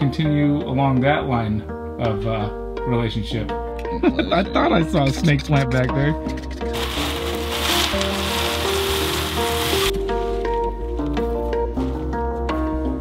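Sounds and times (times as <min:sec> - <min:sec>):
background music with low beat: 0:00.0 - 0:13.0
pellets pouring from plastic bag: 0:06.7 - 0:10.0.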